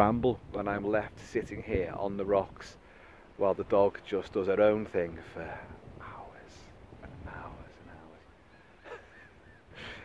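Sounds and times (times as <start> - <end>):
distant bird cries: 8.0 - 10.0.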